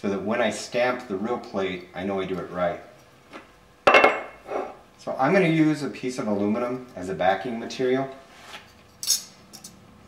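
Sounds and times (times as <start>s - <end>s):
metal plate clinking: 3.9s - 4.7s.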